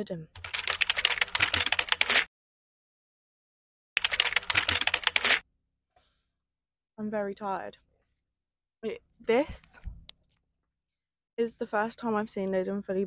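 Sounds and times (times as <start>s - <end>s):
keyboard typing clicks: 4.0s - 5.4s.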